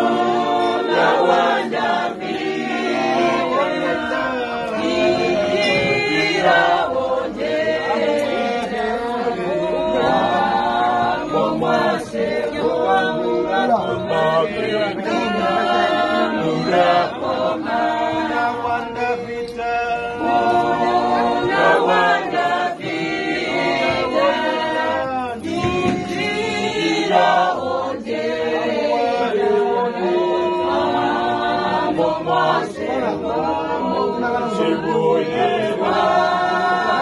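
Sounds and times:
women singing unaccompanied: 0.0s - 37.0s.

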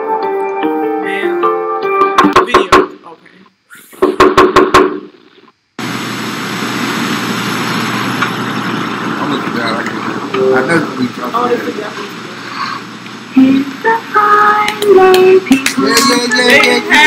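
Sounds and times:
loud knocks: 2.2s - 3.0s, 4.0s - 5.2s
steady hiss: 2.4s - 17.0s
music notes: 10.3s - 11.0s.

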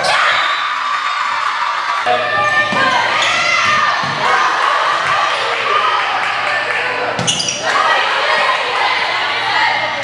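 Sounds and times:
voices echoing in a hall: 0.0s - 10.0s.

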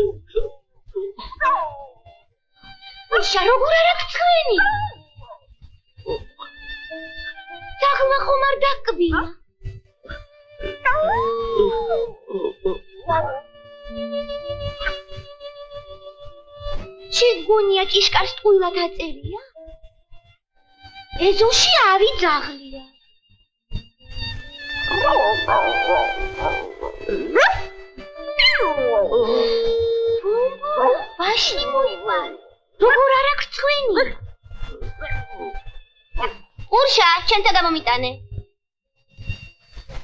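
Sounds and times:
film score held notes: 0.0s - 38.5s
cartoon dog howling: 1.4s - 2.0s, 10.6s - 13.4s, 24.9s - 33.1s.

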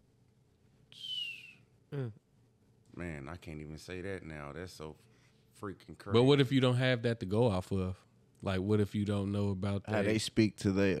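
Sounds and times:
short breathy whistle: 0.9s - 1.7s.

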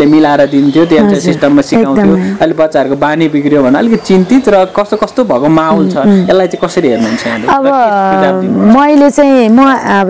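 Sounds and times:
woman speaking: 1.0s - 2.4s, 7.2s - 10.0s.

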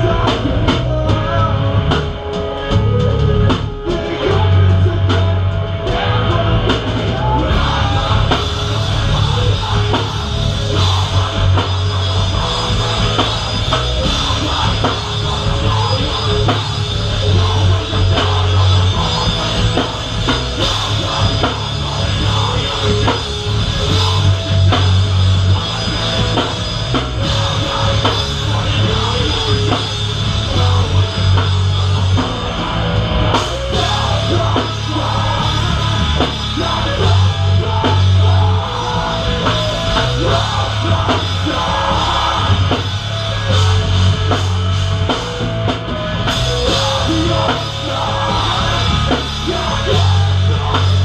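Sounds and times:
hardcore band playing loud: 0.0s - 51.0s
heavy bass: 0.0s - 51.0s.

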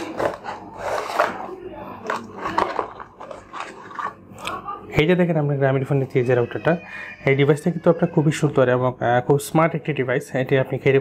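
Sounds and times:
cardboard scraping and crackling: 0.0s - 4.2s.

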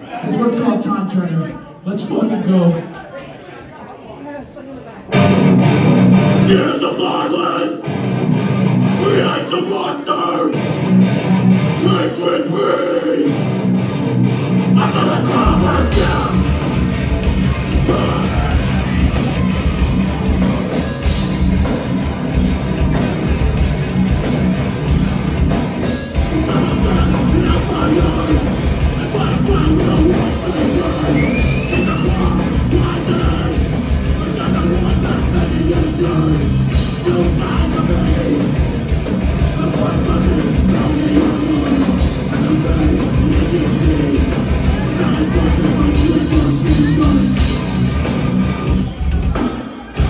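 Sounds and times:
live rock band playing: 5.1s - 7.1s, 7.8s - 9.8s, 10.4s - 50.0s
distorted electric guitars: 5.1s - 50.0s
bass in a stop-start riff: 13.4s - 49.4s.

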